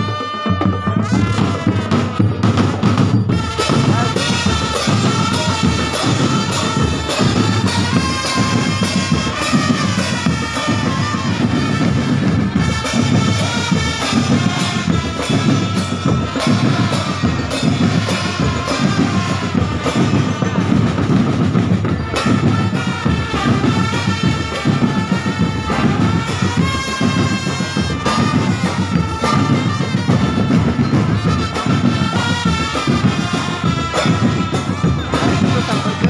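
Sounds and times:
drum band playing: 0.0 - 36.0.

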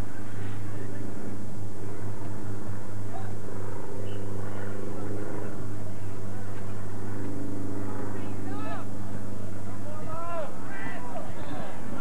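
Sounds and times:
low hum with overtones: 0.0 - 12.0.

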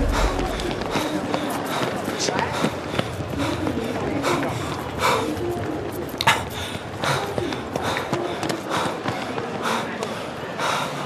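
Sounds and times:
man panting: 0.0 - 11.0.

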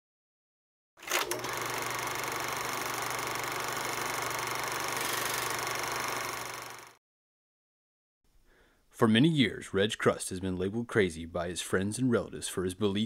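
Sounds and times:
film projector whirring clatter: 1.0 - 7.0.

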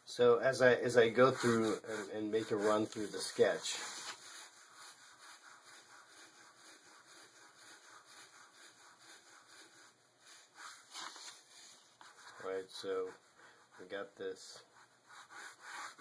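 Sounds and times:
pen scratching on paper: 0.8 - 16.0.

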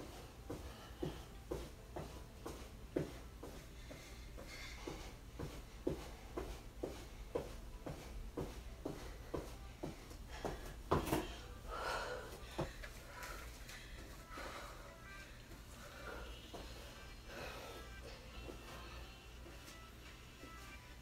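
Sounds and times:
heavy panting breaths: 0.0 - 19.8.

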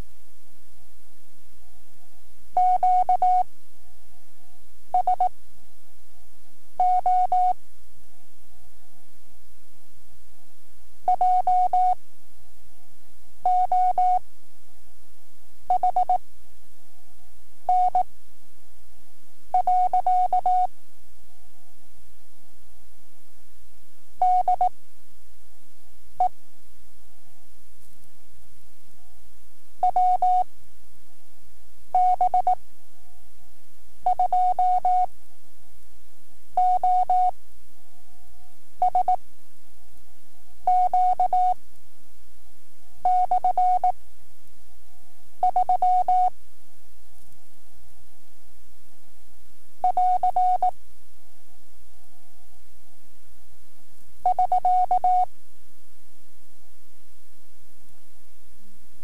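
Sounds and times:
faint steady hum: 0.0 - 59.0
morse code tone: 38.8 - 39.2, 40.7 - 41.6, 43.1 - 43.9, 45.4 - 46.3, 49.8 - 50.7, 54.2 - 55.3.

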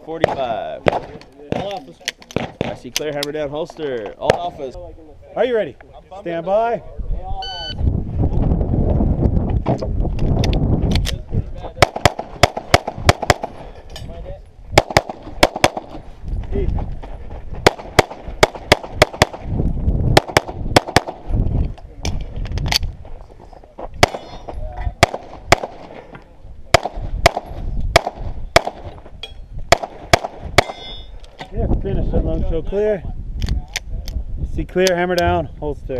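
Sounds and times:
pistol shots: 0.2 - 2.8, 11.8 - 13.6, 14.8 - 16.0, 17.6 - 19.5, 20.2 - 21.3, 24.0 - 26.0, 26.7 - 28.9, 29.7 - 30.8.

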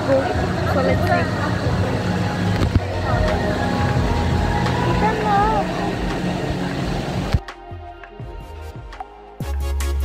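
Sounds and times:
voices: 0.0 - 7.4
running water: 0.0 - 7.8
background music: 0.0 - 10.0.

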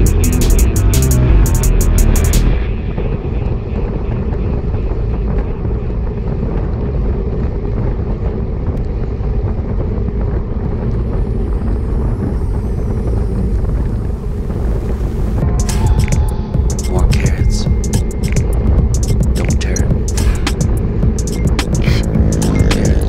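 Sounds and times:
wind rushing over microphone: 2.6 - 23.0.

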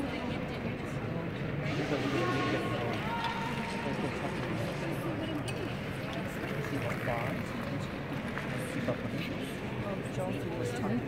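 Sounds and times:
ice arena background hum: 0.0 - 11.0.

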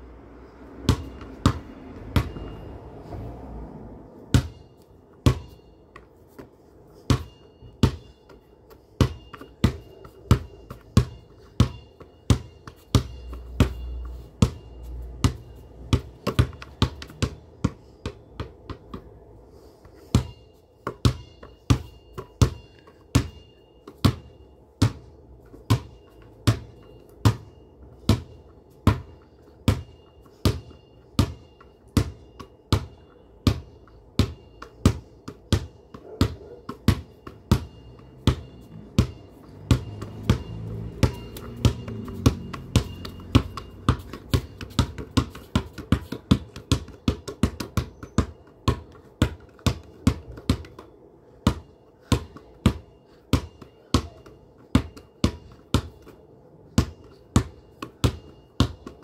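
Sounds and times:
basketball bouncing on hard ground: 0.4 - 3.3, 4.1 - 59.0.

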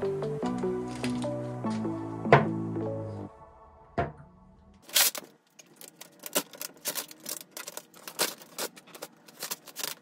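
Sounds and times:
vinyl film crackling and snapping: 0.5 - 1.4, 4.8 - 10.0.

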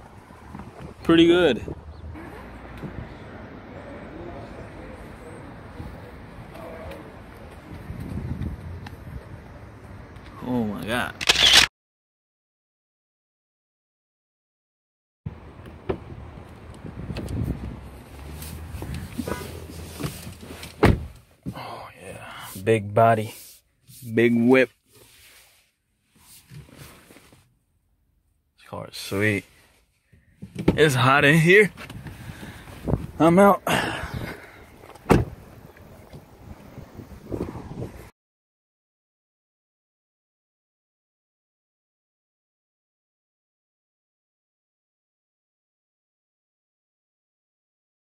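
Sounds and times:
car door slam: 20.8 - 21.2, 35.0 - 35.4.

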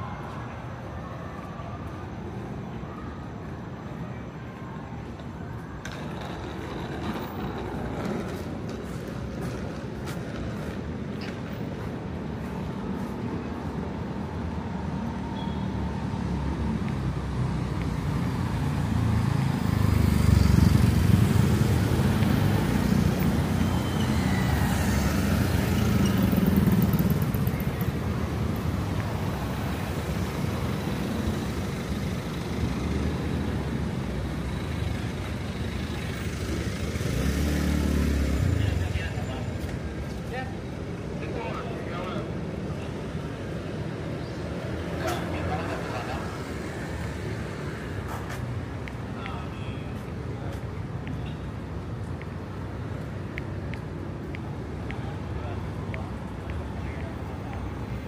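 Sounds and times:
cars passing on road: 0.0 - 58.0.

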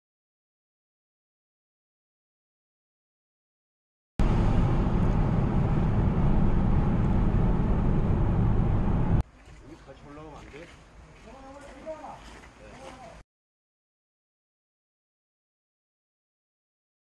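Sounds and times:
car cabin road rumble: 4.2 - 9.2
people's voices outdoors: 9.5 - 13.2.

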